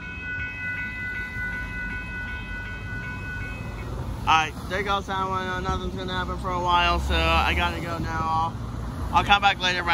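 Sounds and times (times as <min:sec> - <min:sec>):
crossing warning bell ringing: 0:00.0 - 0:08.4, 0:09.2 - 0:09.9
freight train rumbling: 0:00.0 - 0:09.9.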